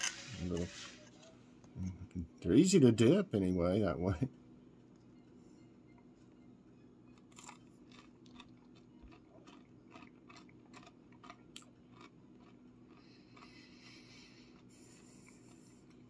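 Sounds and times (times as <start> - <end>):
crisp crunching of chewing: 7.2 - 16.0.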